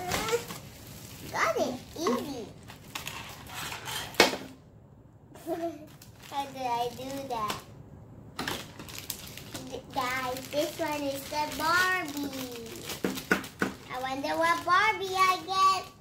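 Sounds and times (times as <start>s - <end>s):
plastic wrapper crinkling and tearing: 0.0s - 4.2s, 5.9s - 7.7s, 8.4s - 16.0s.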